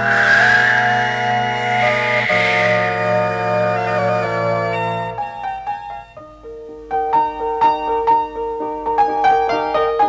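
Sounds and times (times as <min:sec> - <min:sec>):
hissing whoosh effect: 0:00.0 - 0:04.4.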